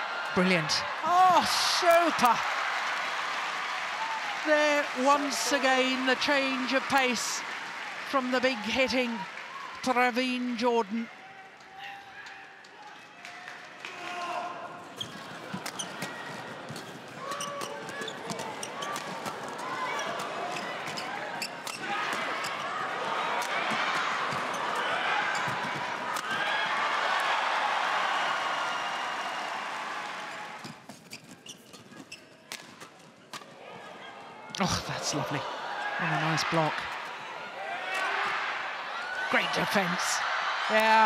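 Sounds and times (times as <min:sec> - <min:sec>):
players' voices: 0:00.0 - 0:02.7, 0:04.0 - 0:12.1, 0:33.6 - 0:41.0
shoes squeaking and stamping: 0:15.0 - 0:22.6, 0:30.6 - 0:33.2.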